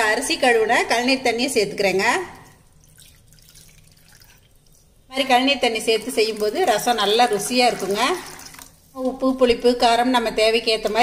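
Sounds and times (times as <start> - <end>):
hand squeezing wet food: 6.0 - 9.0.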